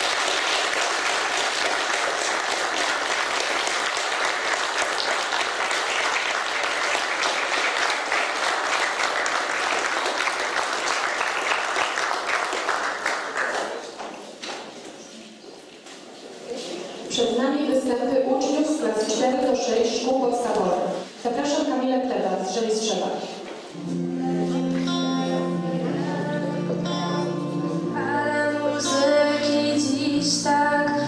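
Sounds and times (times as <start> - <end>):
audience applauding: 0.0 - 14.2.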